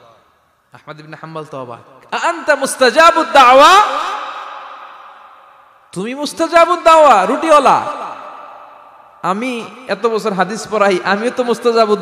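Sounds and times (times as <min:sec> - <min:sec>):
man speaking: 0:00.0 - 0:05.1, 0:05.7 - 0:12.0
reverberant amplified voice tail: 0:00.0 - 0:12.0.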